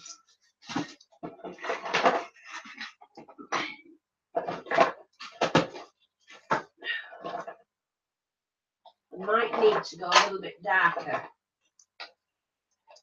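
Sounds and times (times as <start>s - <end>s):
bottles clattering on a table: 4.4s - 7.6s.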